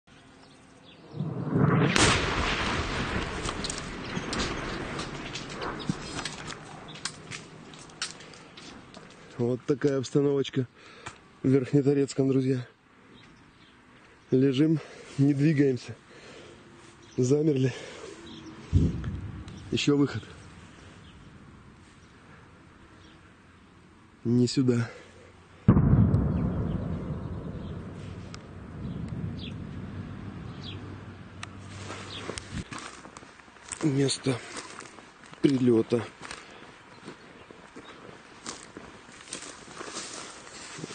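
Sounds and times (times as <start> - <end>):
sharp blast: 1.1 - 5.3, 18.7 - 20.6, 25.7 - 31.2
artillery shell explosion: 1.1 - 5.9, 25.7 - 30.8
sharp cracks and clicks: 3.1 - 9.1.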